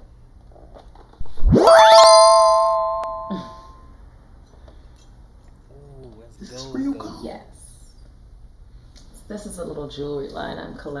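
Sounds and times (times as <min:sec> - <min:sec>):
fast rising whoosh: 0:01.2 - 0:02.0
bright ringing chime: 0:01.6 - 0:03.7.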